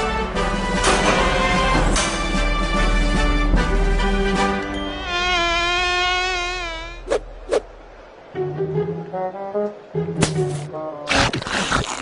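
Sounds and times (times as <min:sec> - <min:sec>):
cartoon fly buzzing: 0:04.8 - 0:07.3.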